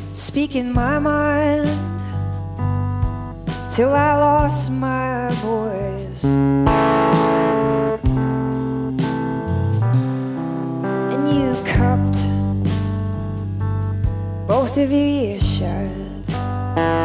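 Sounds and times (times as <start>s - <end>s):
live rock band playing: 1.8s - 4.7s, 5.3s - 17.0s
drum hits: 6.6s - 11.0s.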